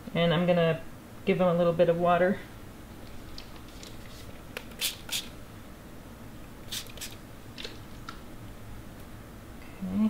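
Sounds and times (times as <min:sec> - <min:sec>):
spray bottle squirts: 0:04.7 - 0:05.3, 0:06.7 - 0:07.8.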